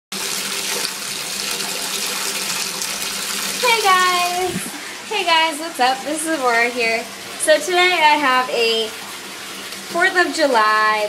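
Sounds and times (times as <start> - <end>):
water running from bathtub tap: 0.1 - 11.0
person speaking: 3.6 - 8.9.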